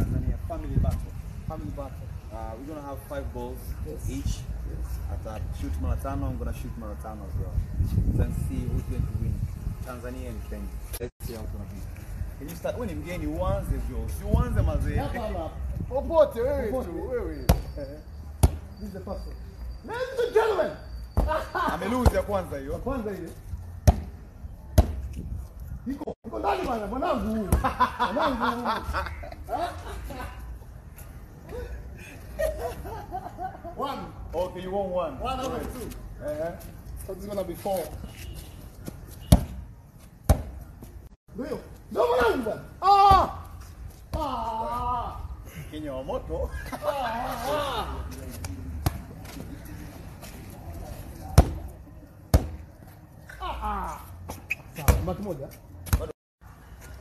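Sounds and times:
football thudding: 0:18.4 - 0:18.7, 0:23.8 - 0:25.2, 0:39.2 - 0:39.6, 0:40.2 - 0:40.6, 0:51.3 - 0:51.7, 0:52.3 - 0:52.7.

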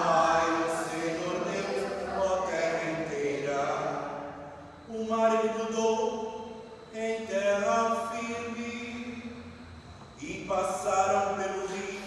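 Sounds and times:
person chanting in long notes: 0:00.0 - 0:09.4.

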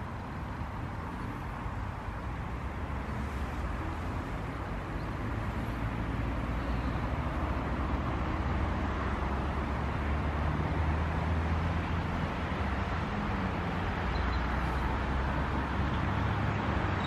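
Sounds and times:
distant road traffic rumble: 0:00.0 - 0:17.0.

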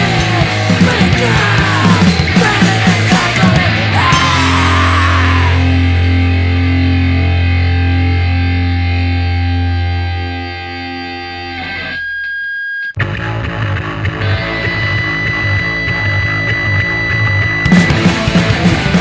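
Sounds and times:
drums: 0:00.0 - 0:10.4, 0:13.0 - 0:19.0
distorted guitar hardcore punk: 0:00.0 - 0:12.0, 0:13.0 - 0:19.0
high held tone: 0:00.0 - 0:13.0, 0:14.1 - 0:18.7
droning bass note: 0:04.6 - 0:11.6, 0:13.0 - 0:18.3.

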